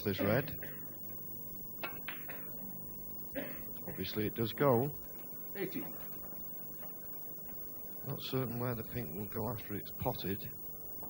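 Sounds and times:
snooker balls clicking: 1.8s - 2.9s.

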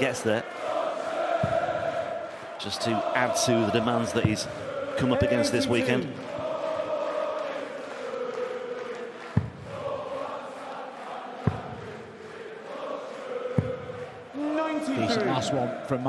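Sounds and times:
crowd chanting and singing: 0.0s - 16.0s.

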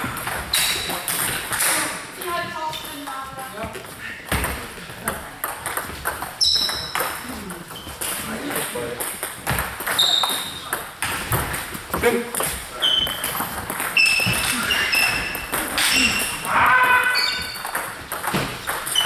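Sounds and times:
table tennis balls clicking: 0.0s - 19.0s.

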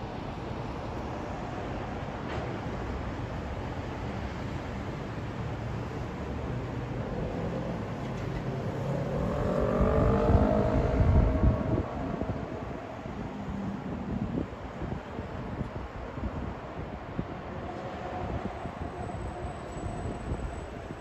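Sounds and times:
city traffic rumble: 0.0s - 21.0s
vehicle passing with whine: 7.0s - 14.4s.

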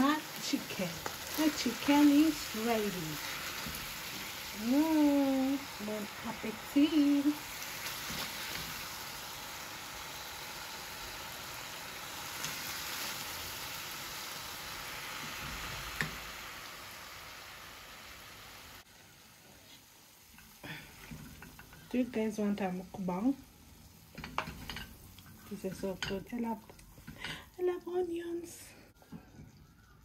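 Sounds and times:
stew sizzling in a pot: 0.0s - 30.0s.

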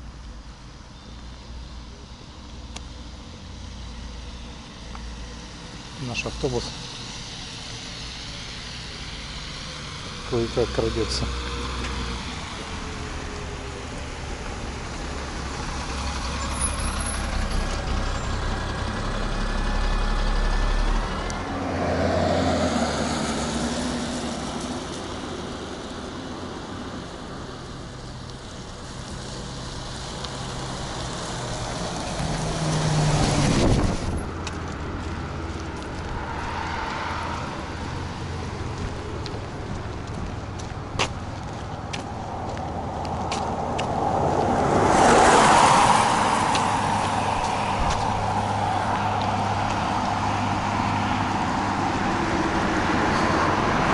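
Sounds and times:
vehicles passing on wet road: 0.0s - 53.9s.

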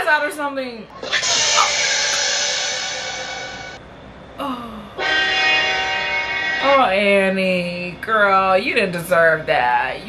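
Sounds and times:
synthesizer chord stinger: 1.0s - 3.8s.

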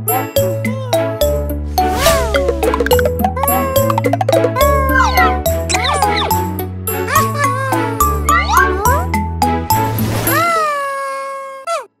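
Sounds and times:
cartoon jingle: 0.2s - 9.1s.

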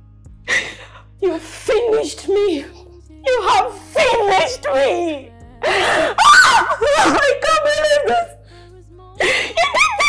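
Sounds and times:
woman wailing and sobbing: 3.3s - 8.4s, 9.2s - 10.0s.

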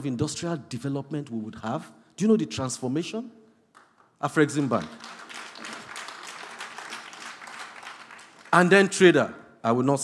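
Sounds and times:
audience applauding: 3.8s - 9.0s.

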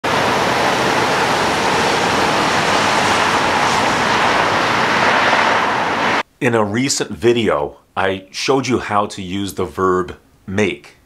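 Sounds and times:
road traffic noise: 0.0s - 6.2s.

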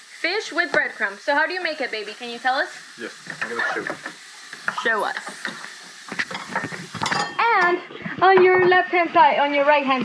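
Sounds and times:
fries sizzling in oil: 0.0s - 10.0s.

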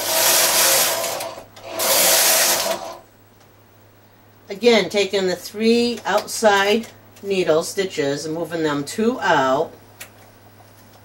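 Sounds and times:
knitting machine carriage sliding: 0.0s - 3.0s.

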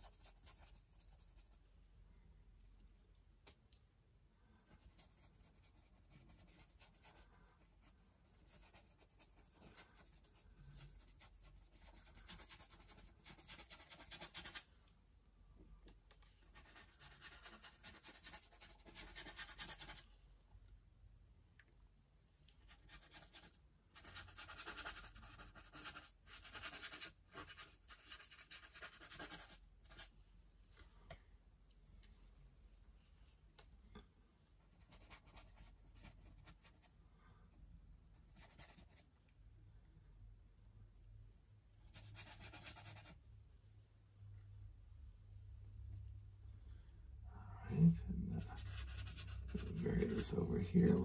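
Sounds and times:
paintbrush scratching on canvas: 0.0s - 1.6s, 4.7s - 14.7s, 16.4s - 20.1s, 22.6s - 30.1s, 38.2s - 39.0s, 41.9s - 43.2s, 47.9s - 51.0s.

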